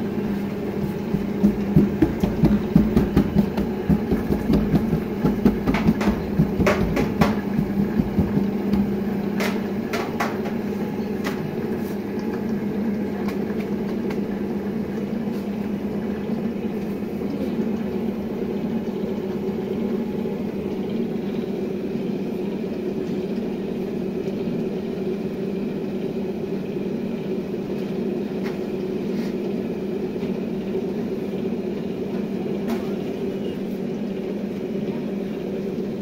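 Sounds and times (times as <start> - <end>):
low machine hum: 0.0 - 36.0.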